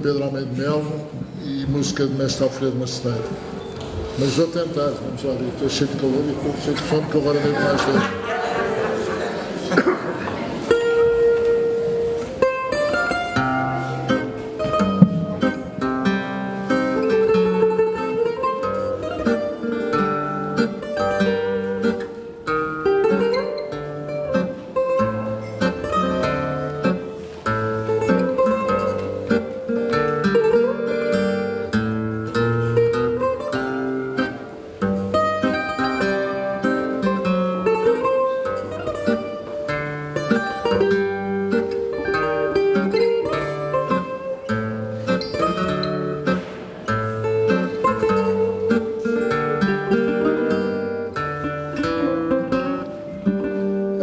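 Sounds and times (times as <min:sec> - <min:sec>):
guitar chords: 0:00.0 - 0:54.0
plucked guitar melody: 0:00.0 - 0:54.0.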